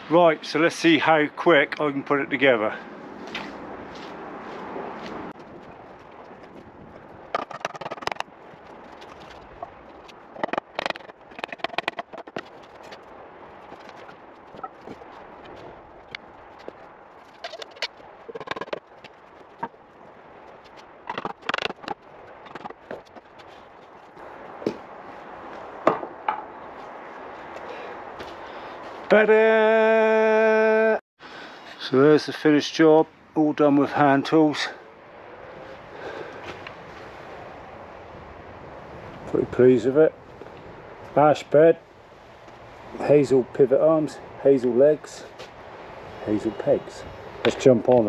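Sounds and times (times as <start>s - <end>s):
sharp wooden knocks: 7.3s - 8.3s, 10.4s - 12.5s, 17.4s - 19.7s, 21.1s - 23.2s, 25.8s - 26.5s.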